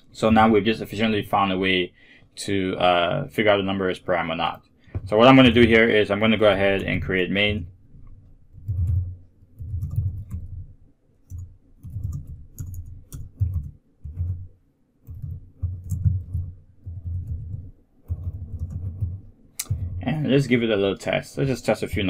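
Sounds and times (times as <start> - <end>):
computer keyboard typing: 8.5 - 10.6, 11.3 - 20.0.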